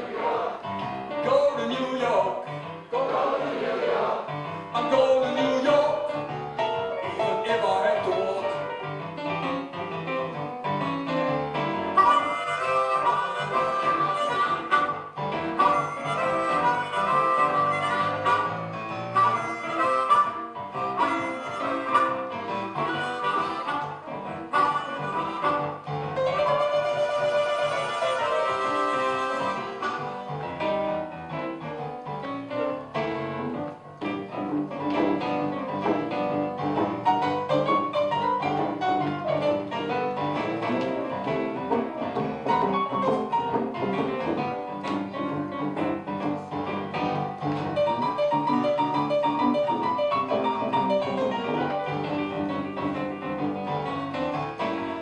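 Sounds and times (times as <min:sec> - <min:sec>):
electric piano accompaniment: 0:00.0 - 0:55.0
blues harmonica solo: 0:11.8 - 0:30.3.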